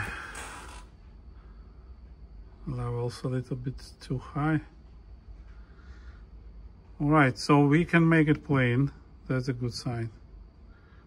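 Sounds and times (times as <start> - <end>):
soft hiss: 0.0 - 11.0.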